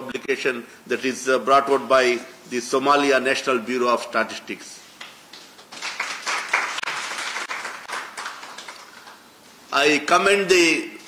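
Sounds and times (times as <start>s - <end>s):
audience applauding: 5.4s - 9.2s.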